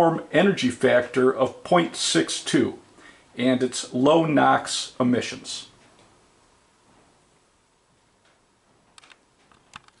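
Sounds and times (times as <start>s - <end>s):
small sharp clicks: 8.2s - 10.0s.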